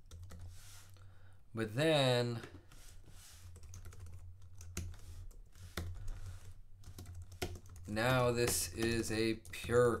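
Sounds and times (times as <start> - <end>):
typing on computer keyboard: 3.6 - 9.8.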